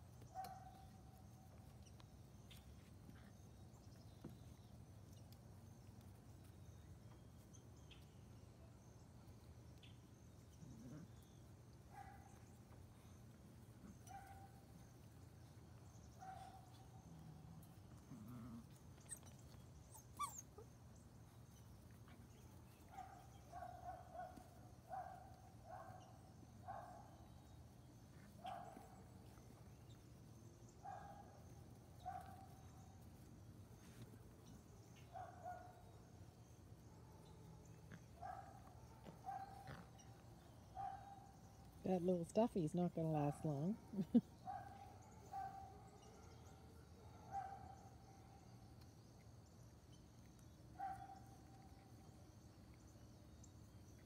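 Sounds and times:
puppies yipping and whimpering: 18.5 - 20.9.

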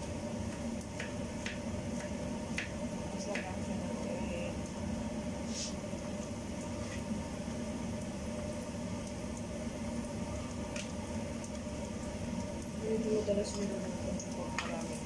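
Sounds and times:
faint steady hum: 0.0 - 15.0
garlic sizzling in oil: 0.0 - 15.0.

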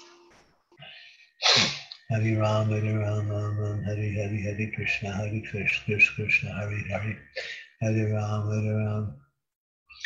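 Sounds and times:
person sneezing: 1.4 - 1.9
person inhaling: 7.4 - 7.8.

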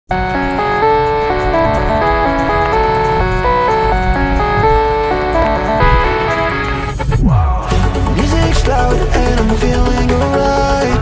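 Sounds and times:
instrumental music with bass beat: 0.1 - 11.0.

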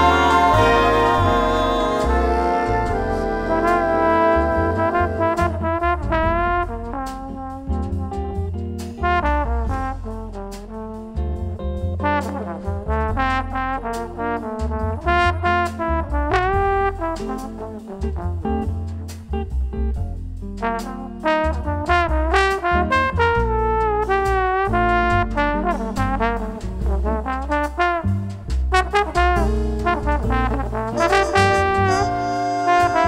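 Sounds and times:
brass section playing: 0.0 - 7.7, 9.0 - 11.2, 12.0 - 18.9, 20.6 - 33.0
bass and drums: 0.0 - 33.0.

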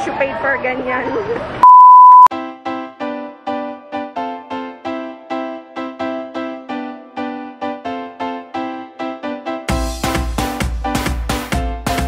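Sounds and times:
electronic censor bleep: 1.6 - 2.3
background music keyboard notes: 2.3 - 12.0.

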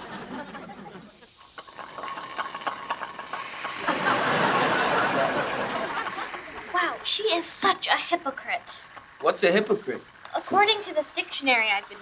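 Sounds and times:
dental instrument hissing: 1.0 - 12.0.

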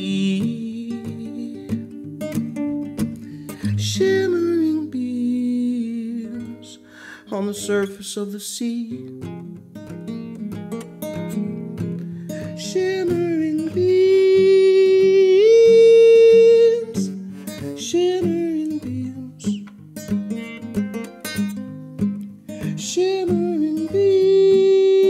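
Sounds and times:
fingerpicked classical guitar: 0.0 - 25.0.

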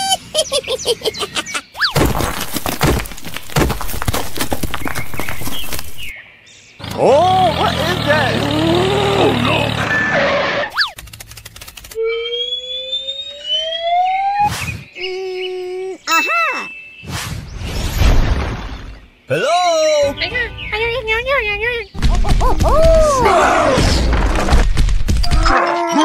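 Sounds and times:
dense crackling clicks: 11.0 - 12.0
rising whistle glide: 12.0 - 14.7
squeaky cartoon voice: 15.0 - 16.7.

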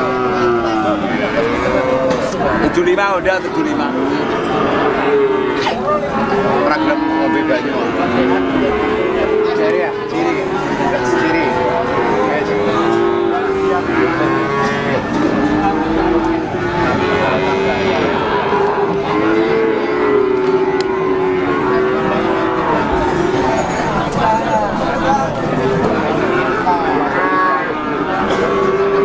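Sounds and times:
busy livestock market noise: 0.0 - 29.0
cattle mooing: 0.0 - 29.0
people's voices: 0.0 - 29.0.

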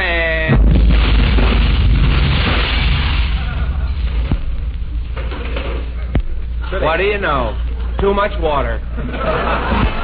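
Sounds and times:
explosion rumble with crackles: 0.4 - 6.6.

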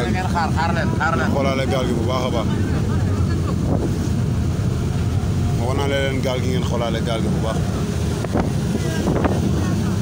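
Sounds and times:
water splashing along boat hull: 0.0 - 10.0
wind buffeting microphone: 0.0 - 10.0.

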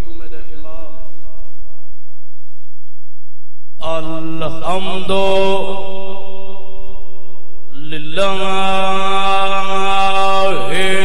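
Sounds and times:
man chanting through amplification: 0.0 - 1.5, 3.8 - 7.0, 7.7 - 11.0.

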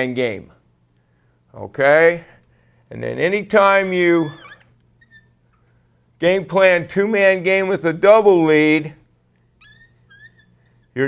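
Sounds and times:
marker squeaking on a whiteboard: 4.0 - 5.6, 9.4 - 11.0.

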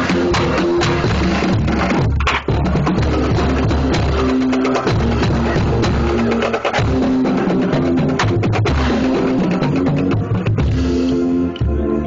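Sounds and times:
drum strikes: 0.0 - 11.2
marching band playing: 0.0 - 12.0.

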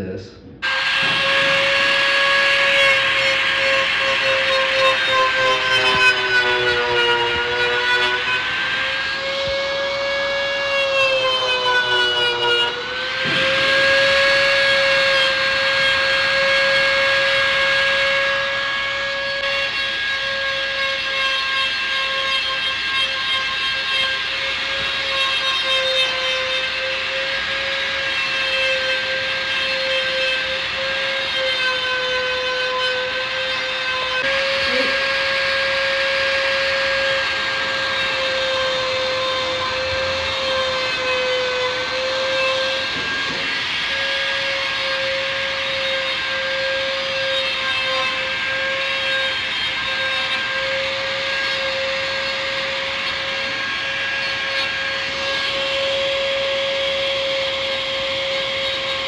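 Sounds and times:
rotary tool whine: 0.6 - 59.0.

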